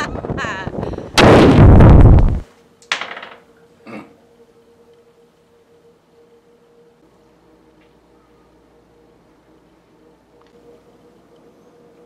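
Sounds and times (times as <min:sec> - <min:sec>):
explosion boom: 0:01.2 - 0:02.4.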